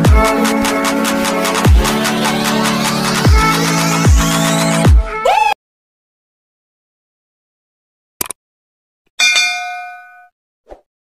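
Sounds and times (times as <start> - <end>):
bright bell ding: 9.2 - 10.3.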